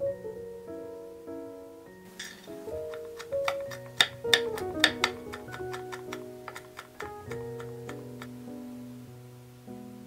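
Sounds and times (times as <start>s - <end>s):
background music: 0.0s - 10.0s
knife chopping on wooden board: 2.2s - 8.4s.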